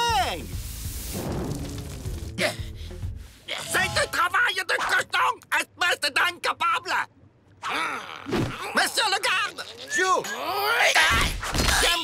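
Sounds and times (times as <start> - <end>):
background music: 0.0 - 4.5
rushing of flames flaring up: 0.5 - 2.5.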